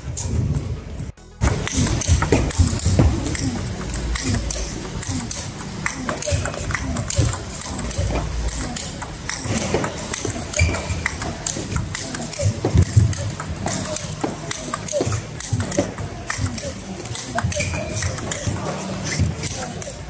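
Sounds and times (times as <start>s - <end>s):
chatter in a large hall: 0.0s - 20.0s
balls bouncing on table: 0.1s - 20.0s
balls dropping to floor: 0.1s - 20.0s
ping pong balls clicking off bat: 1.4s - 20.0s.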